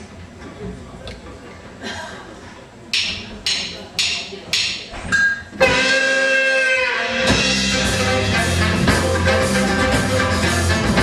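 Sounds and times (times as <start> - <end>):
sharp percussion strikes: 2.9 - 11.0
long held band note: 5.6 - 9.4.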